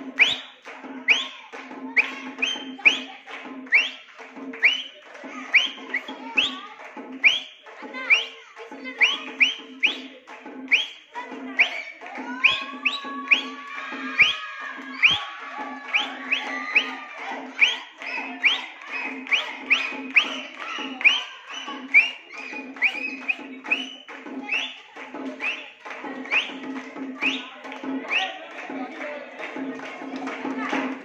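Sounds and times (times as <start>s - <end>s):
children's voices and shouts: 0.0s - 4.0s, 4.6s - 31.0s
crowd clapping in rhythm: 0.0s - 31.0s.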